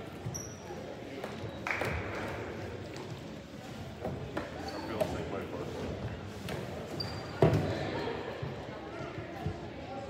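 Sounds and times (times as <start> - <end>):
background chatter of voices: 0.0 - 10.0.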